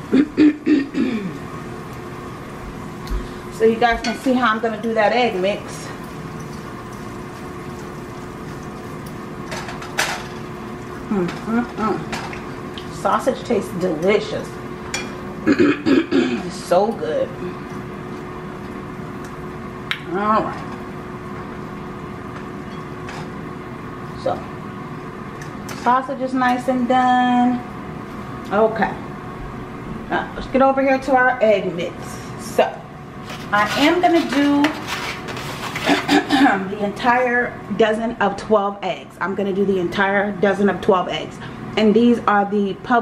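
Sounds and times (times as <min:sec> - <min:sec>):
kitchen appliance fan humming: 0:00.0 - 0:43.0
woman clearing her throat: 0:00.1 - 0:01.4, 0:15.4 - 0:16.5, 0:35.9 - 0:36.6.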